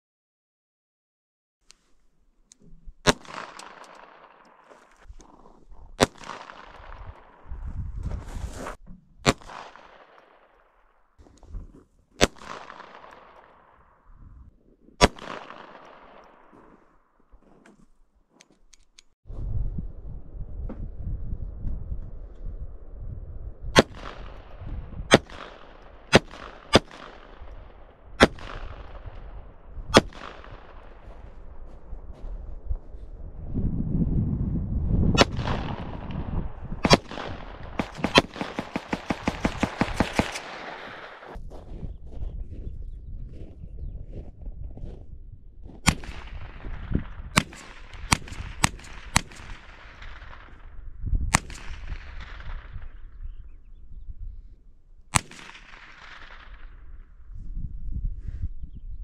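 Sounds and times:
pistol shots echoing: 3.0 - 4.9, 6.0 - 7.5, 9.2 - 10.8, 12.2 - 14.0, 15.0 - 16.7, 23.8 - 31.7, 35.2 - 41.4, 45.8 - 50.6, 55.1 - 56.8.

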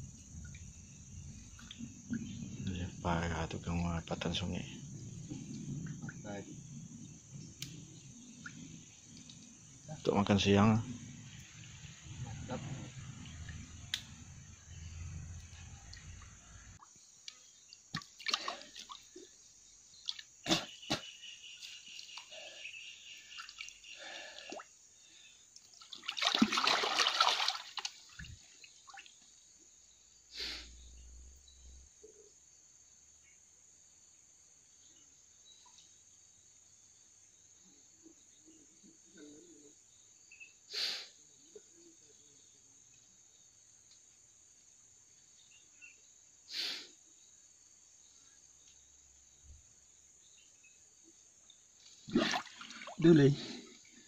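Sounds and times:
high insect drone: 0.0 - 25.6, 26.2 - 54.0
water splashing in a pool: 15.0 - 20.4, 23.2 - 29.4, 51.8 - 54.0.

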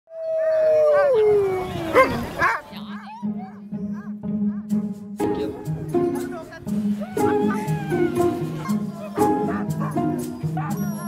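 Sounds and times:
dogs howling and yelping: 0.1 - 4.6, 7.0 - 11.0.

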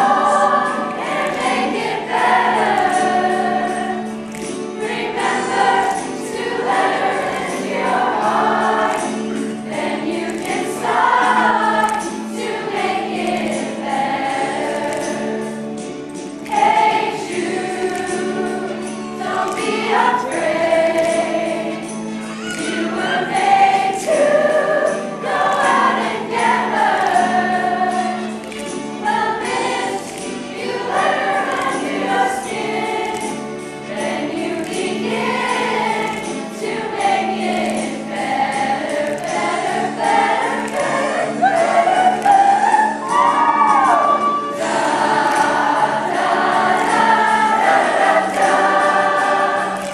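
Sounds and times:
choir singing upbeat pop: 0.0 - 49.9
jingling percussion beat: 0.0 - 49.9.

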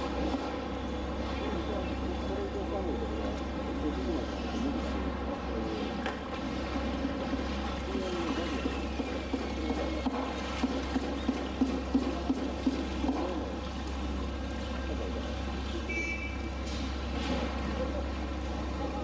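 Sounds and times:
short splashes: 5.9 - 18.8
water trickling and dripping: 6.0 - 19.0.

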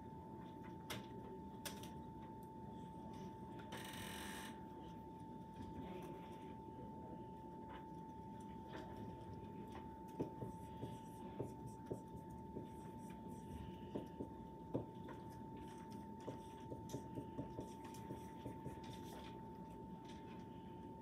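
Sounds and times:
marker writing on whiteboard: 10.1 - 19.3.

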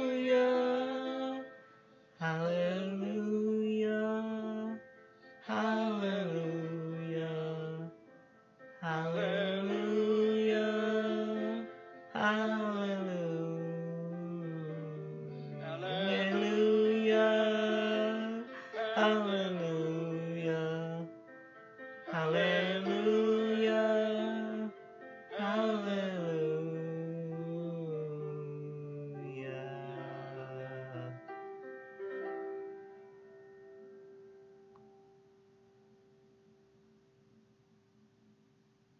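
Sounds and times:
held chord ringing out: 0.0 - 35.3
man singing a long note: 2.2 - 4.8, 5.5 - 8.0, 8.8 - 21.1, 22.1 - 31.3.

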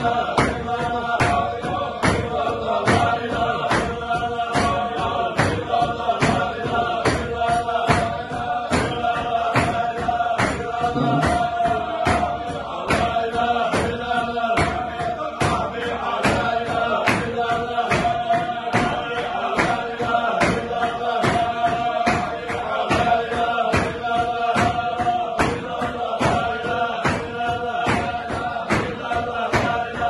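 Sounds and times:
men chanting together: 0.0 - 30.0
steady beat of sharp strokes: 0.0 - 30.0.

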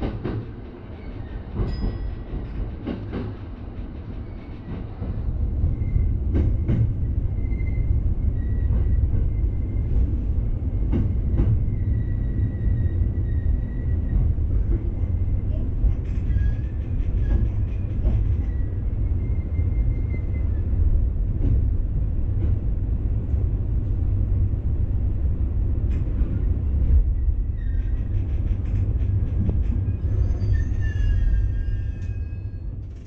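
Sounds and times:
electric train rumble: 0.0 - 33.0.

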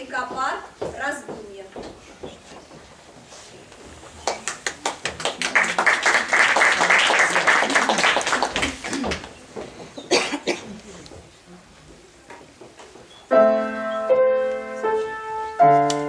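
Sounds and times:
audience applauding: 4.2 - 9.4.

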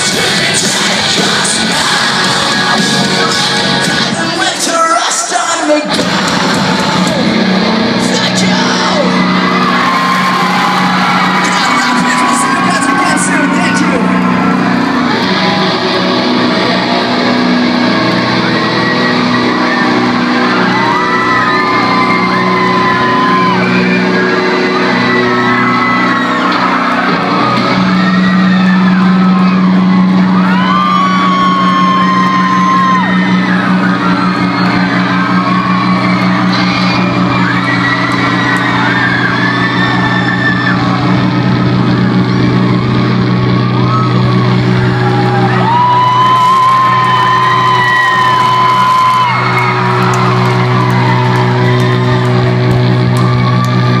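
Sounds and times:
live rock band playing loudly: 0.0 - 4.6, 5.8 - 54.0
crowd shouting and cheering: 0.0 - 54.0.

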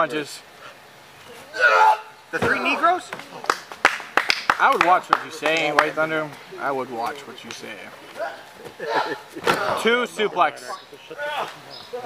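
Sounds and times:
men talking excitedly: 0.0 - 3.8, 4.5 - 12.0.

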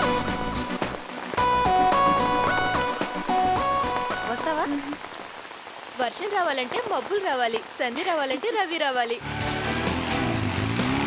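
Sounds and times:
steady rain hiss: 0.0 - 11.0.

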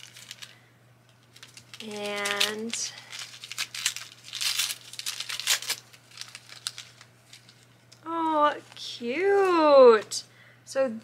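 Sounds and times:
packaging crinkling and tearing: 0.0 - 9.7.

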